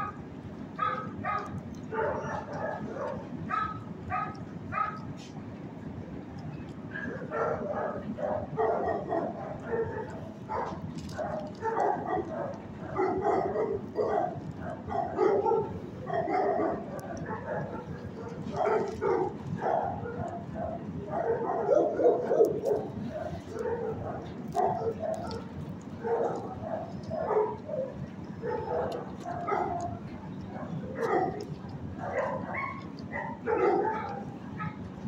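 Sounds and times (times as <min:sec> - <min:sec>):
dogs barking and yipping: 0:00.0 - 0:05.3, 0:06.8 - 0:35.0.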